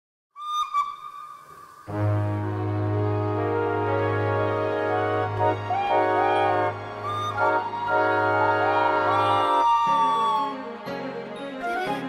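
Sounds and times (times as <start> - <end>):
brass music: 1.9 - 9.7.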